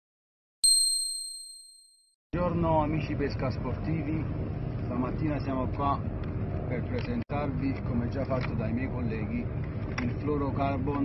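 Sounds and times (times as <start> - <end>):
bright high chime ding: 0.6 - 2.0.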